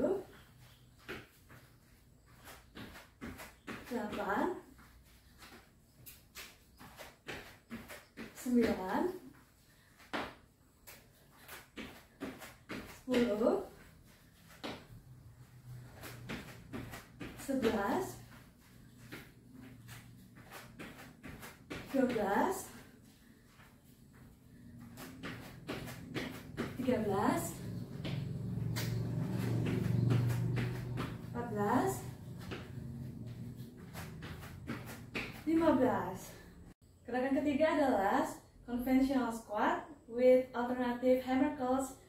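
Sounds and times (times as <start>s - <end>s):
woman's voice: 0.0s - 0.3s, 3.9s - 4.7s, 8.4s - 9.3s, 13.0s - 13.8s, 17.4s - 18.3s, 21.9s - 22.8s, 26.7s - 27.8s, 31.2s - 32.4s, 35.4s - 36.5s, 37.1s - 42.0s
feet thudding on exercise mat: 0.6s - 36.6s
steady low hum: 12.7s - 35.8s.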